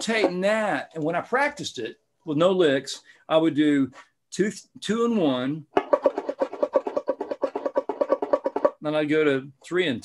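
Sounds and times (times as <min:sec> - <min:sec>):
banjo cross-picking: 0:00.0 - 0:01.2, 0:05.7 - 0:08.8.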